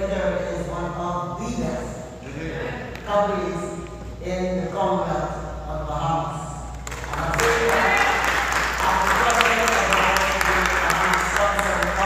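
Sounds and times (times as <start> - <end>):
voices: 0.0 - 12.0
audience applauding: 6.8 - 12.0.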